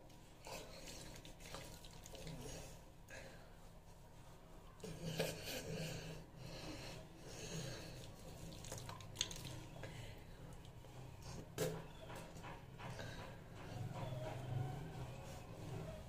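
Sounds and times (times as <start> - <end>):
breathing: 2.4 - 3.7, 5.6 - 8.1, 9.8 - 10.6.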